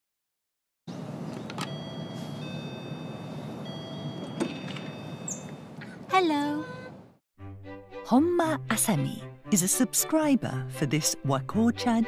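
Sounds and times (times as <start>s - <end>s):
two-tone doorbell chime: 1.6s - 5.7s.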